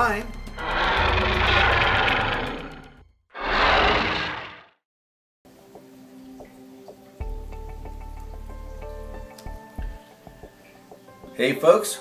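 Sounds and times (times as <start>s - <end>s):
loud rough rumble: 0.6s - 4.6s.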